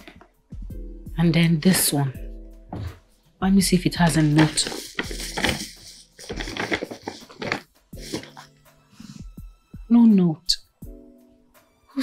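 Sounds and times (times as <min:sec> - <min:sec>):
soft background music: 0:00.0 - 0:12.0
paper bag rustling: 0:04.0 - 0:08.5.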